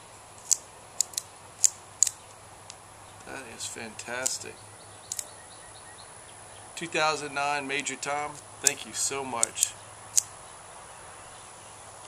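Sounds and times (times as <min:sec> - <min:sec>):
cigar cutter clicks: 0:00.4 - 0:02.8, 0:05.0 - 0:05.3, 0:09.4 - 0:10.3.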